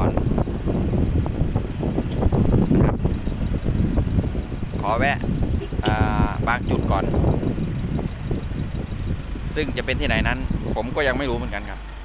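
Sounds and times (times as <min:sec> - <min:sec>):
wind buffeting microphone: 0:00.0 - 0:11.8
person speaking: 0:04.9 - 0:07.1.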